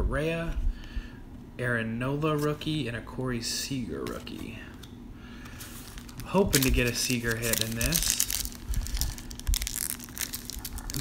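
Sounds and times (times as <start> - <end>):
wrapper crinkling and tearing: 5.7 - 11.0.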